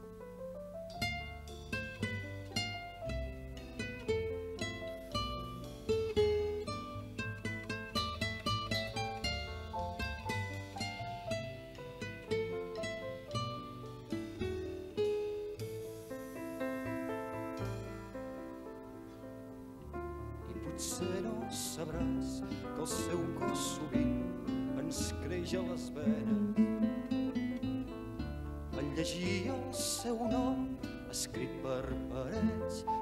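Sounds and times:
fingerstyle classical guitar: 0:00.0 - 0:33.0.

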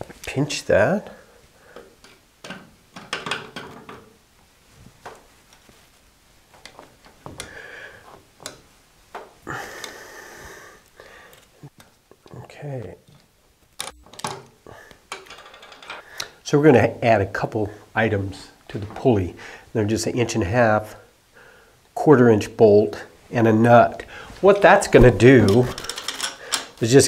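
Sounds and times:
metal clicks and knocks: 0:01.8 - 0:04.2, 0:15.1 - 0:16.0, 0:25.0 - 0:26.8.

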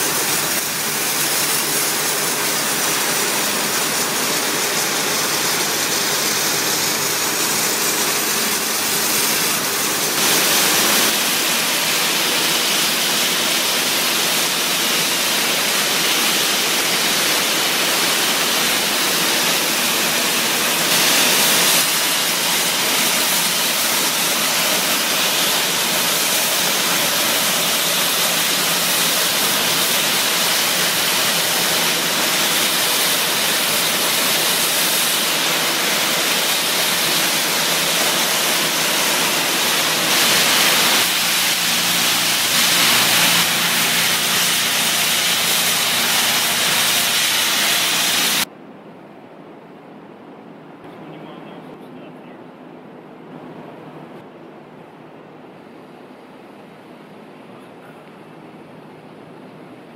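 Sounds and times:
high-pressure water spray: 0:00.0 - 0:48.5.

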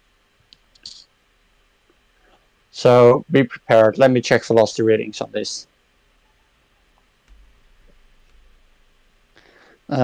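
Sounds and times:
faint computer clicks: 0:06.9 - 0:08.6.

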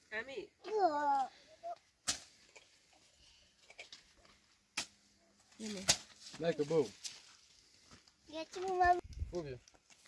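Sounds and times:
child's voice: 0:00.6 - 0:01.8, 0:08.3 - 0:09.0.

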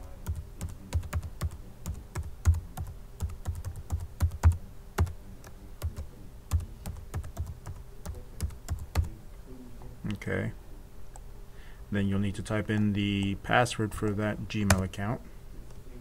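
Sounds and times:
keyboard typing: 0:00.0 - 0:09.1, 0:14.0 - 0:15.0.

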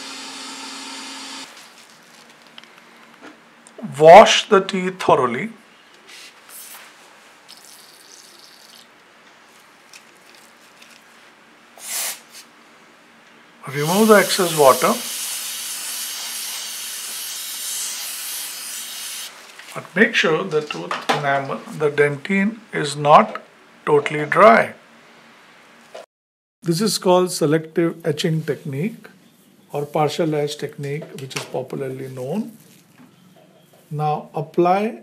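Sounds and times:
dental vacuum suction hissing: 0:00.0 - 0:01.5, 0:13.7 - 0:19.3.

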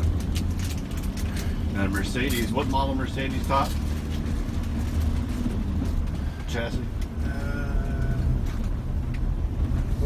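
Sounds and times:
van engine and tyres rumbling: 0:00.0 - 0:10.0.

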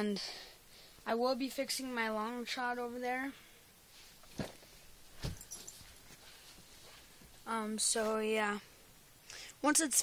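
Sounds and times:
soft handling knocks: 0:04.2 - 0:07.4.

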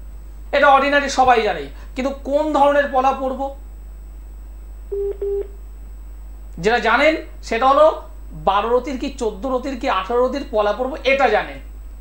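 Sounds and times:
telephone line beeps: 0:04.9 - 0:05.6.

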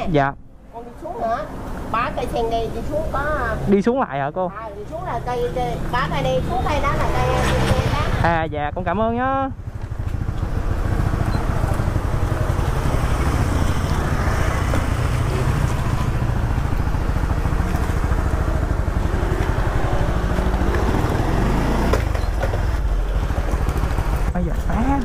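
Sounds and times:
motorcycle engine running: 0:04.8 - 0:25.0.

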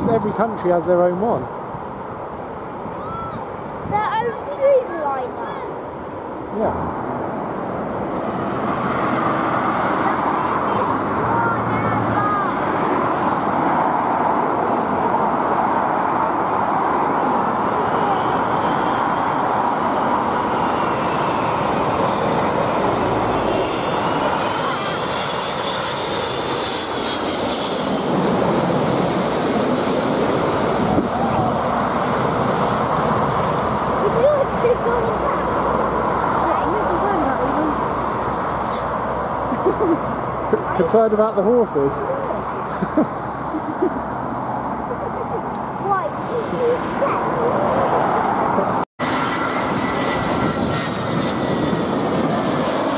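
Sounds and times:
high jet engine whine: 0:00.0 - 0:52.9
jet aircraft roar overhead: 0:00.0 - 0:52.9.

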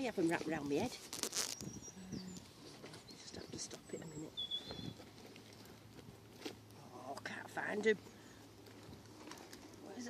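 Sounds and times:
fabric pouch rustling: 0:00.2 - 0:01.8.

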